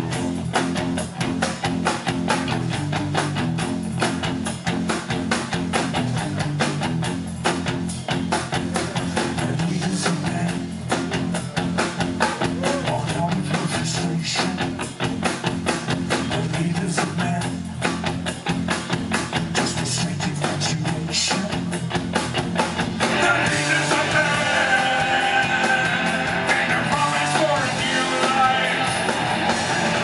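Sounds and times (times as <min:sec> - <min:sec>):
bass guitar: 0:00.0 - 0:30.0
drum kit fast beat: 0:00.0 - 0:30.0
electric guitar: 0:00.0 - 0:30.0.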